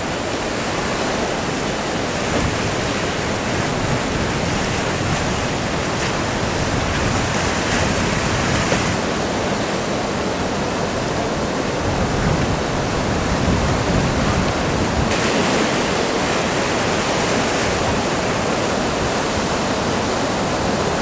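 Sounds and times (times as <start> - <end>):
ocean surf breaking: 0.0 - 21.0.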